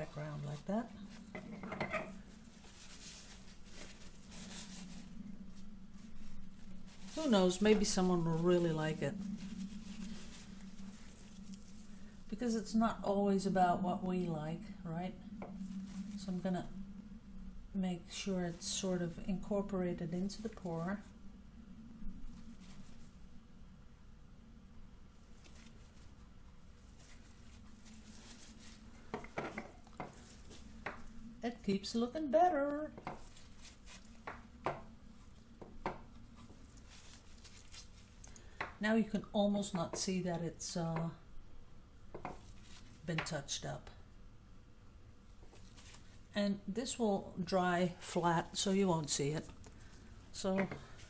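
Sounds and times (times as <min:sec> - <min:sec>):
tissue rubbing on wet paint: 0:00.0 - 0:01.4, 0:02.1 - 0:14.0, 0:15.5 - 0:16.7, 0:22.2 - 0:23.3, 0:25.2 - 0:38.3, 0:42.2 - 0:43.3, 0:45.4 - 0:46.4
low steady hum: 0:00.0 - 0:51.0
paintbrush dabbing on canvas: 0:32.9 - 0:38.8.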